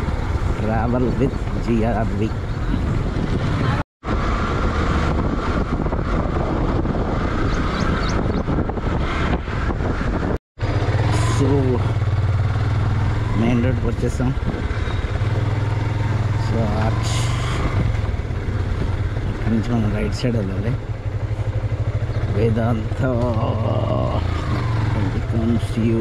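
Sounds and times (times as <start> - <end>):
road and wind noise: 0.0 - 26.0
vehicle engine hum: 0.0 - 26.0.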